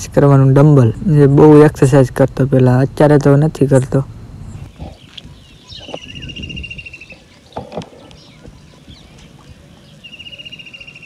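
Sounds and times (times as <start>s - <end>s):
bird trilling: 4.5s - 11.0s.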